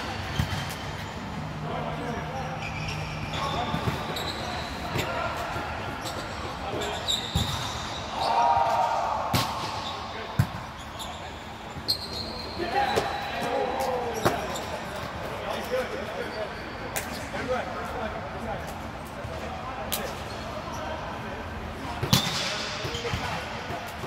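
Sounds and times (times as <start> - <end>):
loud shout: 8.1 - 9.3.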